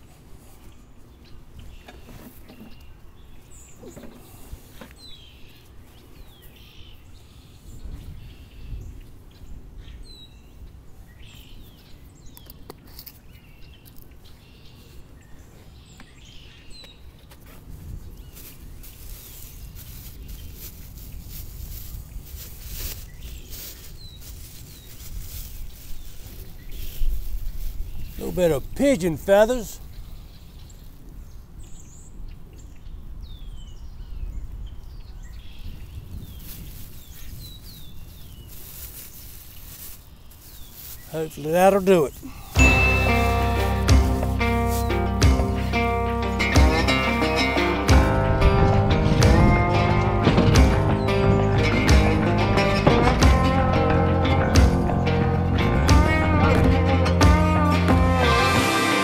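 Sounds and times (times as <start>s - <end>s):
birds chirping: 22.9s - 59.0s.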